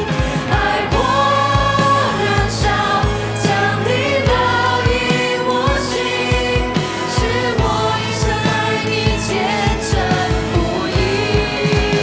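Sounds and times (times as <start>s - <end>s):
people singing: 0.0s - 12.0s
steady drum beat: 0.0s - 12.0s
worship song with band: 0.0s - 12.0s.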